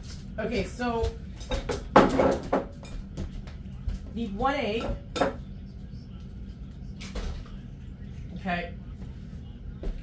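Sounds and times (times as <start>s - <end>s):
kitchenware clattering: 1.3s - 3.1s, 4.6s - 5.5s.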